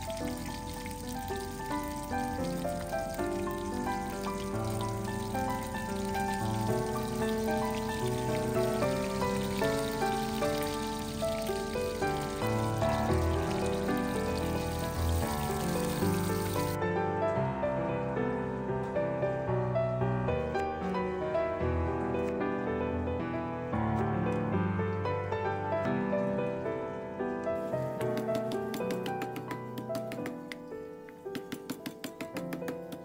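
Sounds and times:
fish frying in hot oil: 0:00.0 - 0:16.8.

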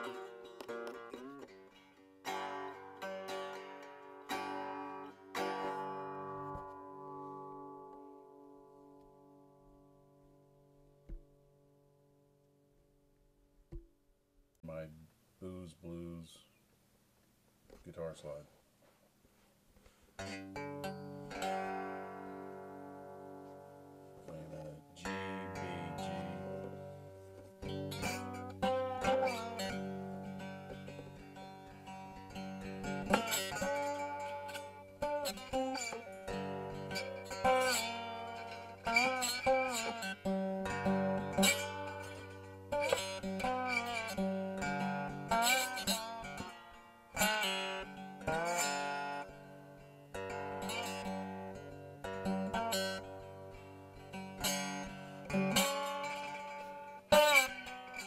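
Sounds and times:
slide guitar gospel melody: 0:00.0 - 0:09.5, 0:20.2 - 0:58.0.

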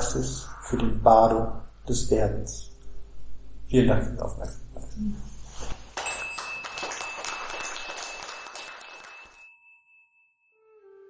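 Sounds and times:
audience applauding: 0:06.0 - 0:09.5.

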